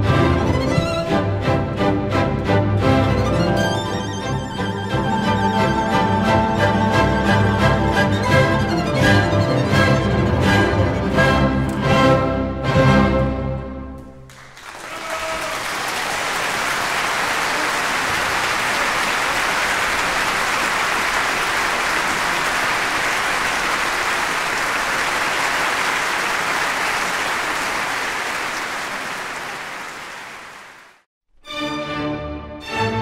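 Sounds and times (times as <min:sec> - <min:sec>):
audience applauding: 0:14.0 - 0:31.1.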